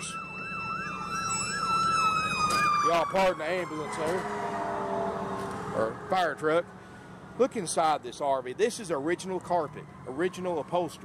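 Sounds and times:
emergency siren yelping: 0.0s - 7.4s, 9.0s - 11.0s.

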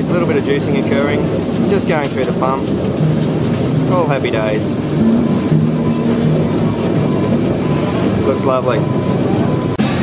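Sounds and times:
machine pump humming: 0.0s - 10.0s.

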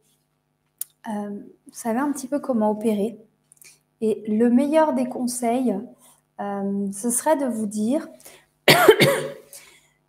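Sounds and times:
woman coughing: 8.7s - 9.6s.

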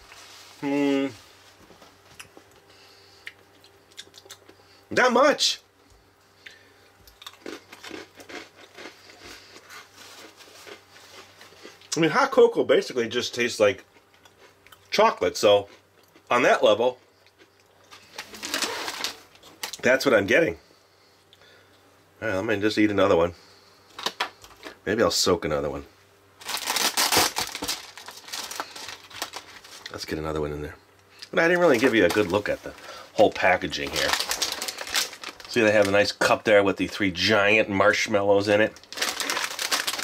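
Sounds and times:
cookie crunching while chewing: 3.3s - 4.6s, 7.0s - 12.0s
plastic wrapper crinkling: 17.9s - 19.8s, 26.4s - 30.1s, 31.5s - 37.0s, 38.6s - 40.0s.

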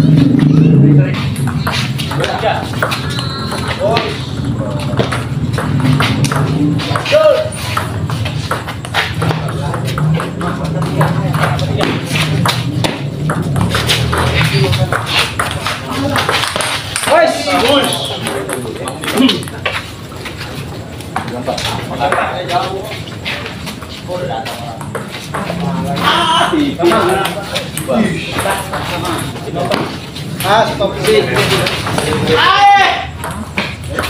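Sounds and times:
voices: 0.0s - 34.0s.

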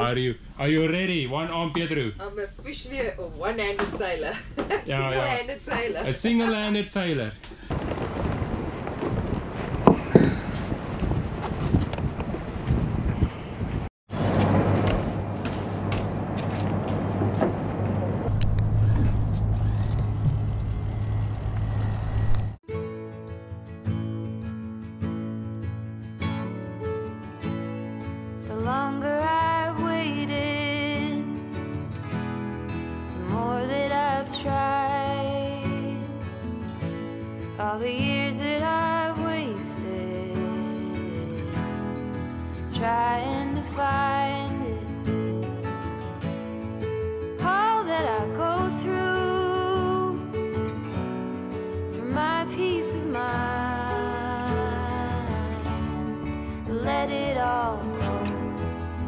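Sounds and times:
wind on microphone: 7.7s - 22.6s
person singing: 37.6s - 41.9s, 52.0s - 59.0s.

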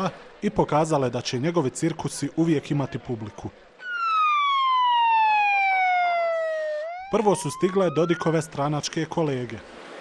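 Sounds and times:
police siren wailing: 3.8s - 8.7s.

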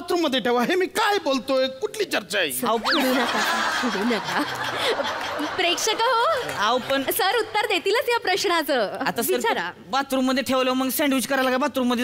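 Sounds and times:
audience laughing: 2.9s - 7.6s.

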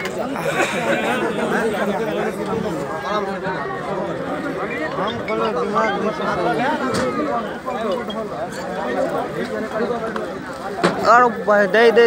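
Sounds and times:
overlapping crowd chatter: 0.0s - 12.0s.

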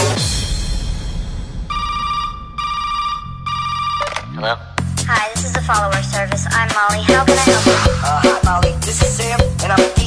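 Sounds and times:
bass line: 1.6s - 10.0s
electronic phone-like beeps: 1.7s - 4.4s
dance music: 4.8s - 10.0s.

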